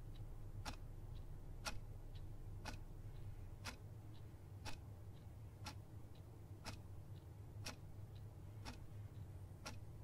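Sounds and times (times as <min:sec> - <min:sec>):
clock ticking: 0:00.0 - 0:10.0
low steady hum: 0:00.0 - 0:10.0.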